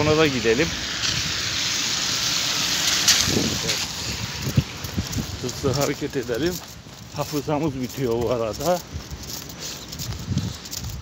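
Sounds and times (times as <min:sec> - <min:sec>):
footsteps on wet pavement: 0:00.0 - 0:11.0.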